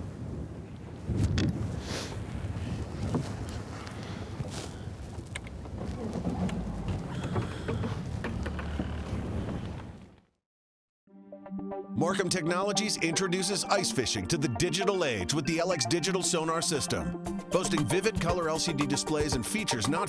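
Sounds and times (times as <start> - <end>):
wind buffeting microphone: 0.0 - 10.1.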